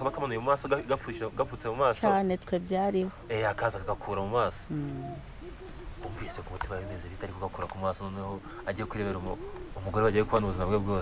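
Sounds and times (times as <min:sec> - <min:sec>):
man speaking: 0:06.0 - 0:11.0.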